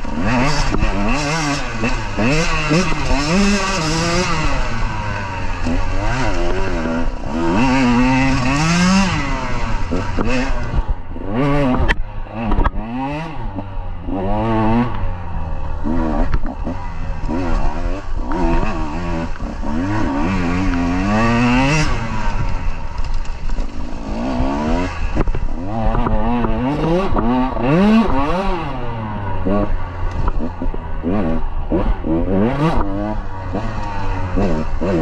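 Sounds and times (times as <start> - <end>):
dirt bike engine revving: 0.0 - 35.0.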